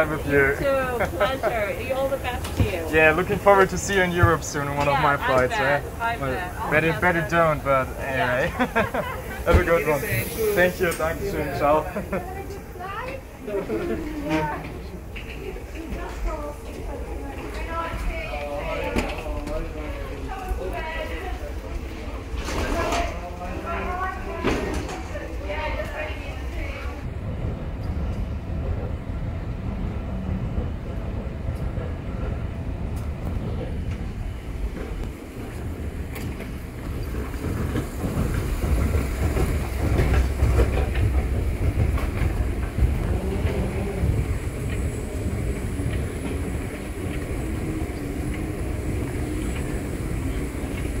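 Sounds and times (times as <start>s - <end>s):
moving walkway rumble: 0.0s - 51.0s
walkway treads rattling: 0.0s - 51.0s.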